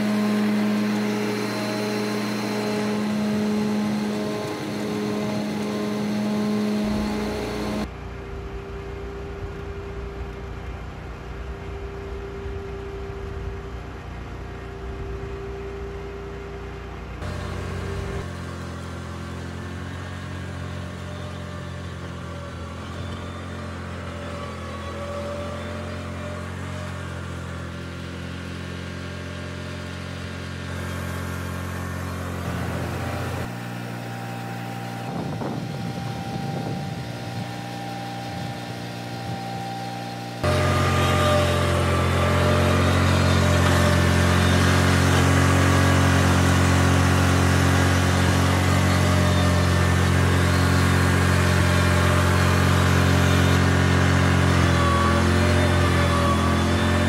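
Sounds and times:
riding lawn mower engine running: 0:00.0 - 0:57.0.

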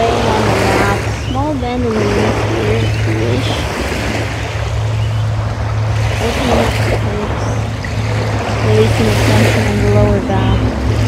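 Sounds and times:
calm sea surf: 0:00.0 - 0:11.0
constant low hum: 0:00.0 - 0:11.0
wind on microphone: 0:00.0 - 0:11.0.

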